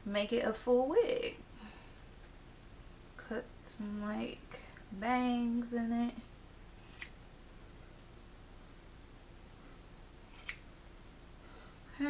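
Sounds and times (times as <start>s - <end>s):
faint room noise: 0.0s - 12.0s
scissors click: 10.4s - 10.6s.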